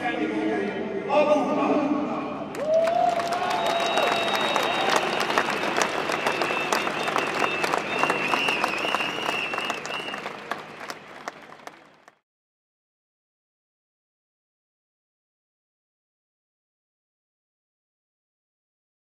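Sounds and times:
crowd applauding: 2.5s - 12.2s.

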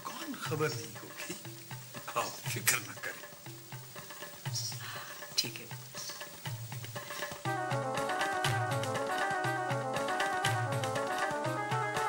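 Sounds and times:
rough high hiss: 0.0s - 12.0s
soft low drum beats: 0.5s - 12.0s.

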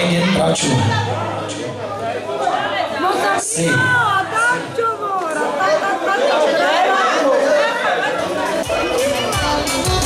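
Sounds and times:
crowd chatter in echoing hall: 0.0s - 10.0s.

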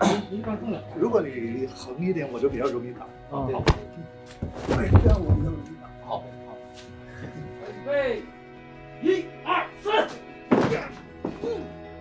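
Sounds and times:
background music: 0.0s - 12.0s
grunting and thuds of fighting: 10.5s - 11.6s.

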